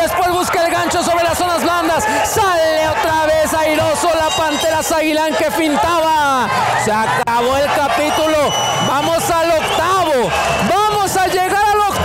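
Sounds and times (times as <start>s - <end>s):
man talking: 0.0s - 12.0s
murmur of arena crowd: 0.0s - 12.0s.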